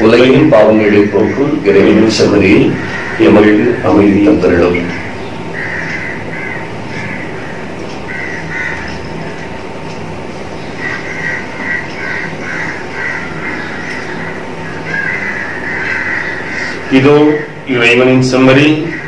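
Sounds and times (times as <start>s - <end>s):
birds calling: 0.0s - 19.0s
steady background hum: 0.0s - 19.0s.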